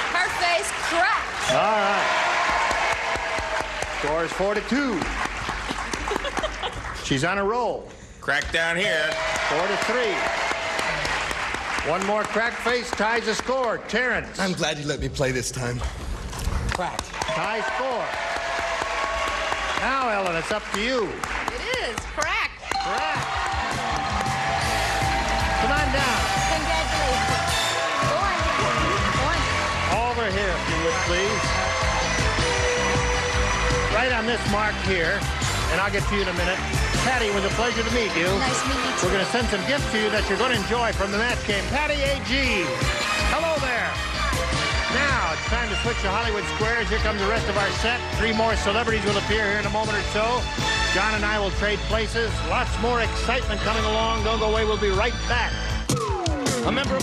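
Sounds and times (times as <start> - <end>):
game-show music: 0.0 - 5.2, 17.2 - 57.0
audience applauding: 0.0 - 7.6, 8.5 - 14.8, 16.6 - 52.0.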